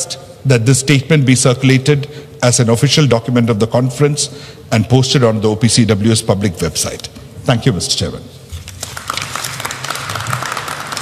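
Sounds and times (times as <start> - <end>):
audience applauding: 8.7 - 11.0.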